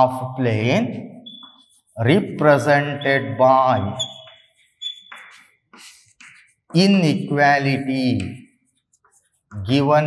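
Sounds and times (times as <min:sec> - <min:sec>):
chalk scratching on blackboard: 0:01.3 - 0:06.9, 0:07.9 - 0:09.9.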